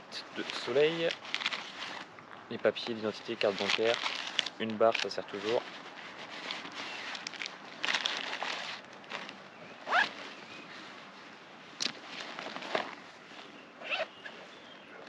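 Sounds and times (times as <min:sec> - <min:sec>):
nylon pack rustling: 0:00.3 - 0:02.1, 0:02.8 - 0:14.7
backpack zipper being pulled: 0:09.9 - 0:10.2, 0:13.8 - 0:14.1.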